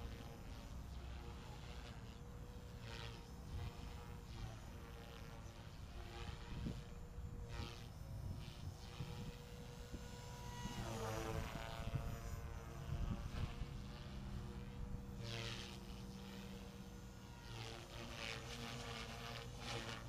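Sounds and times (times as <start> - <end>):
rc helicopter rotor whirring: 0.0 - 20.0.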